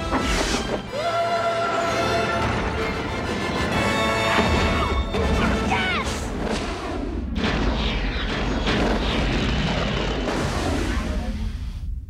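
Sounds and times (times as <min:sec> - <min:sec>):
dramatic film score: 0:00.0 - 0:12.0
booming impacts and crashes: 0:04.4 - 0:12.0.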